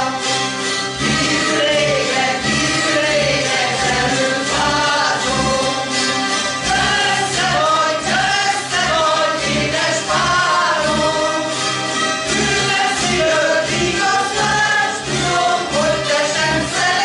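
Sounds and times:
voices singing in unison: 0.0s - 17.0s
zither ensemble strumming: 0.0s - 17.0s.

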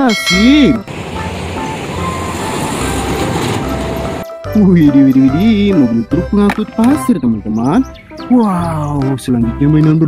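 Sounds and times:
dump truck approaching: 0.0s - 6.1s.

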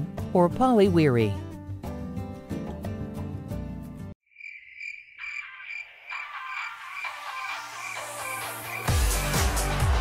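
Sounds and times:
background music: 0.0s - 4.2s, 6.1s - 10.0s
music: 0.0s - 4.2s, 6.2s - 10.0s.

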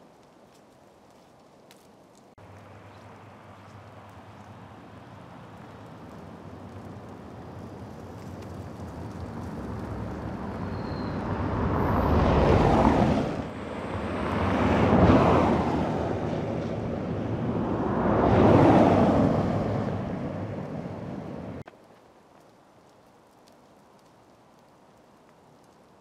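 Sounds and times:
cars driving past on snow: 2.4s - 21.7s.

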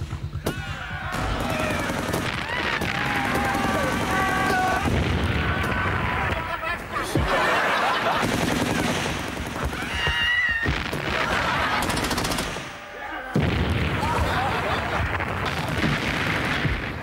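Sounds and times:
voices: 0.4s - 15.2s
machine-gun fire: 1.1s - 5.9s, 7.3s - 12.8s, 13.4s - 17.0s
explosions: 1.1s - 7.4s, 8.0s - 17.0s.

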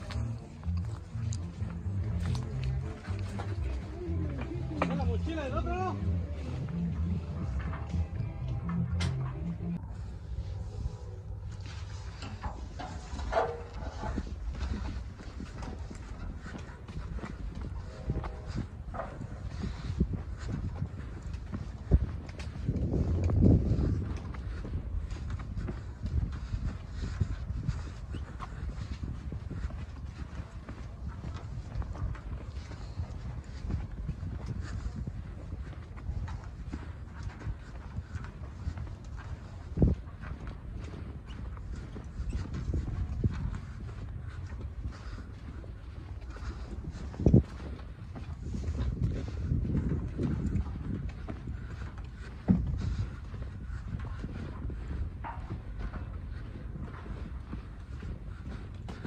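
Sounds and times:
footsteps on sandy dirt: 0.0s - 59.0s
steady low rumble: 0.0s - 59.0s.

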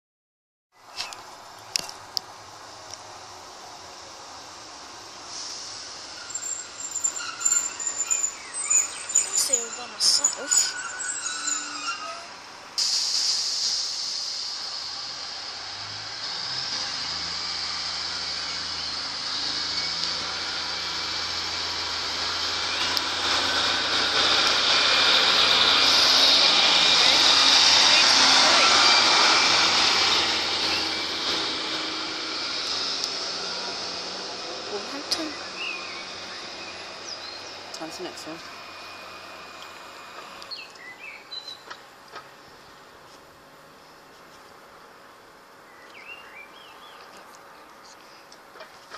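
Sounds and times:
wheel and rail noise: 0.8s - 48.9s
diesel train engine accelerating: 1.1s - 48.9s.

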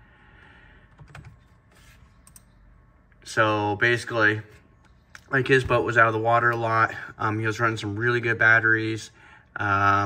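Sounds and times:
keyboard typing clicks: 0.9s - 1.5s, 2.2s - 2.6s.

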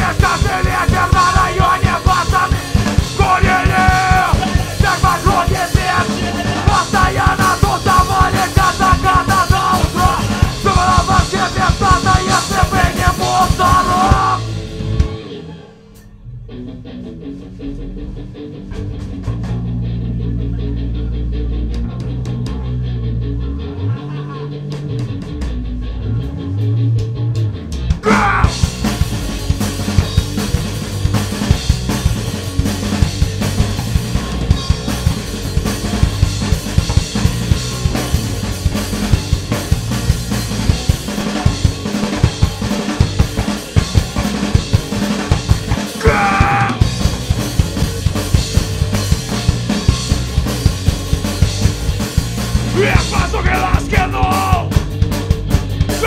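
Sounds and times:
fast dense drumming: 0.0s - 15.1s, 27.9s - 56.0s
distorted guitars: 0.0s - 56.0s
low bass notes: 0.0s - 56.0s
punk band playing live: 0.0s - 56.0s.

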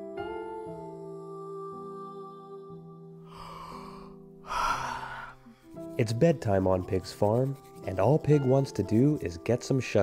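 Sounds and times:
gentle music with held notes: 0.0s - 4.8s, 5.4s - 10.0s
long breathy sigh: 3.2s - 5.7s.

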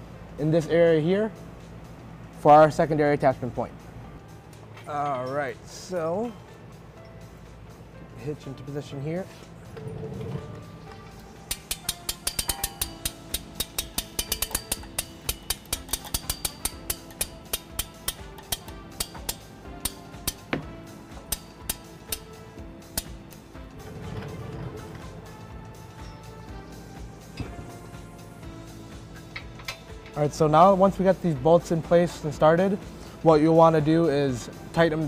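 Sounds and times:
background music: 0.0s - 35.0s
hand tool clicking: 11.5s - 20.6s, 21.3s - 22.3s.

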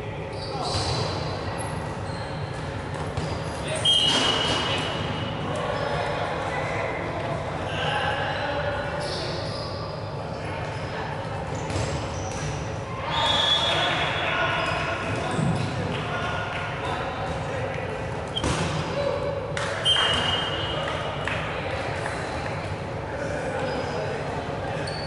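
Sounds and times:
players' voices in echoing hall: 0.0s - 25.0s.

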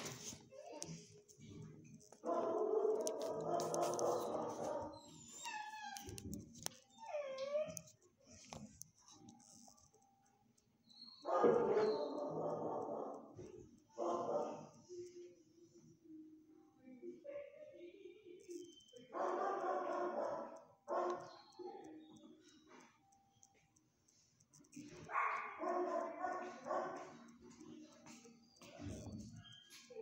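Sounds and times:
dog whining: 6.9s - 7.9s
dog barking loudly: 11.3s - 13.2s, 25.1s - 27.1s.

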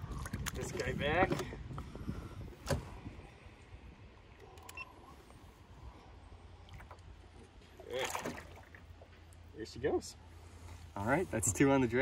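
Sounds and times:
low steady rumble: 0.0s - 12.0s
fish splashing in water: 7.8s - 9.0s.

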